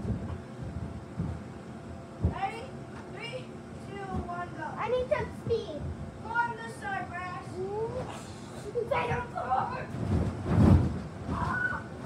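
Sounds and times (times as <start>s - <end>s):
thumps on inflatable bounce house: 2.2s - 2.5s, 9.9s - 11.9s.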